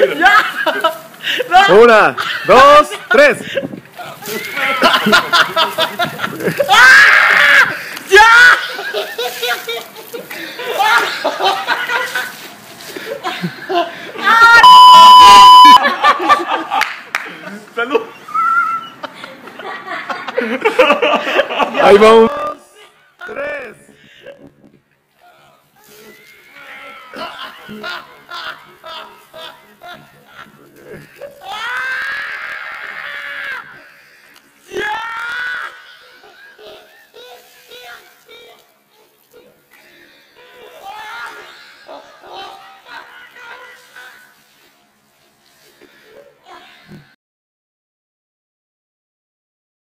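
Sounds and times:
man laughing: 0.0 - 12.4, 13.0 - 18.2, 18.9 - 23.4, 26.7 - 31.8, 35.5 - 39.6, 40.4 - 44.6
person screaming: 6.6 - 8.7, 31.1 - 33.8, 34.7 - 36.0
man shouting: 8.1 - 8.7
censor bleep: 14.6 - 15.9.

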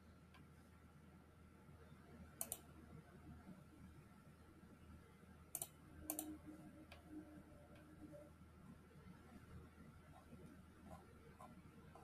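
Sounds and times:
faint low hum: 0.0 - 12.0
computer mouse clicks: 2.4 - 2.7, 5.5 - 7.0.

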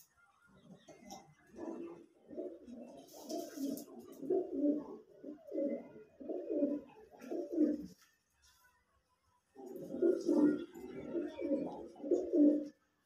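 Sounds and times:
pigeons cooing: 0.6 - 8.0, 9.6 - 12.8.

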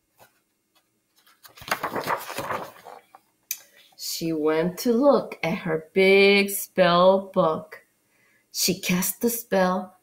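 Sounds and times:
book pages rustling: 0.0 - 3.8.

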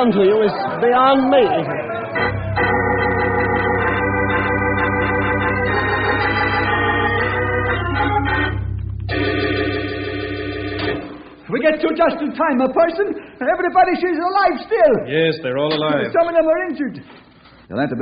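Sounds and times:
organ playing sustained chords: 1.8 - 11.6.

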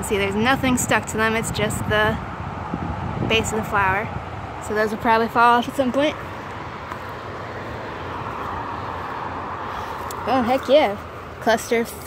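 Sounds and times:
road traffic rush: 0.0 - 12.0.

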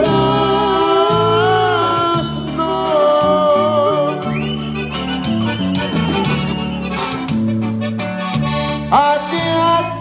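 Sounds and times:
accordion melody: 0.0 - 10.0
bajo sexto and bass notes: 0.0 - 10.0.

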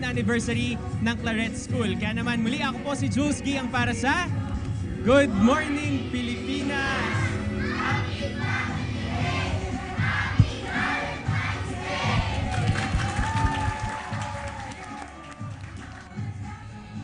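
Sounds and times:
crowd cheering and shouting: 6.9 - 15.5.

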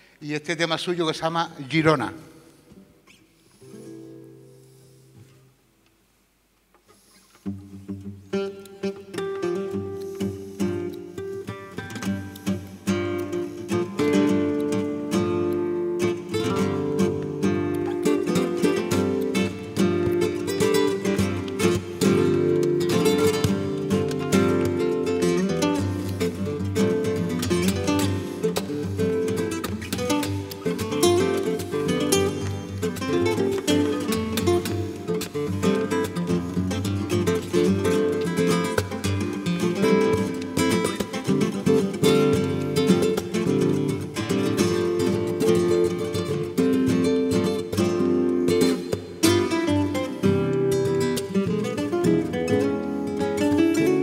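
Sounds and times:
nylon-string guitar jazz duet: 2.7 - 5.9, 6.6 - 54.0.

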